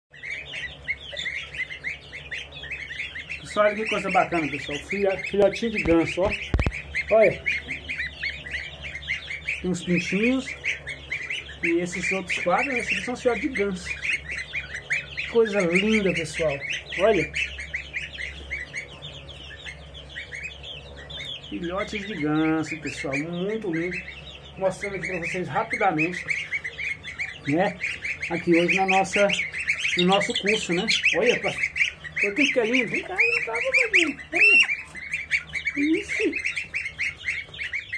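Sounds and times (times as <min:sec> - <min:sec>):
goslings and chicks peeping: 0:00.1 - 0:37.9.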